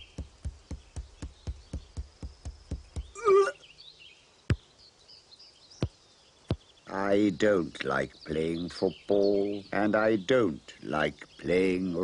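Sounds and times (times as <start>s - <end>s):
cartoon knocks: 0.0s - 3.2s
short cry with wavering pitch: 3.2s - 3.6s.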